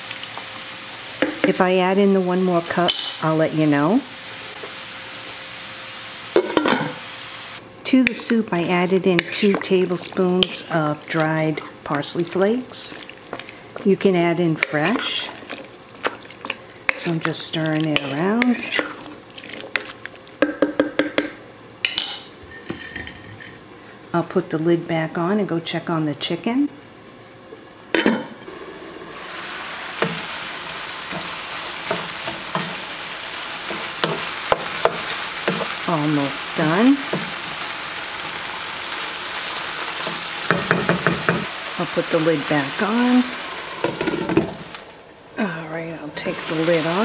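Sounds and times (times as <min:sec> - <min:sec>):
food sizzling in a pan: 0:00.0 - 0:20.4, 0:28.4 - 0:45.1, 0:46.2 - 0:47.0
woman speaking: 0:01.4 - 0:04.1, 0:07.8 - 0:13.0, 0:13.8 - 0:15.4, 0:17.0 - 0:18.8, 0:24.1 - 0:26.8, 0:35.8 - 0:37.1, 0:41.8 - 0:43.4, 0:45.4 - 0:47.0.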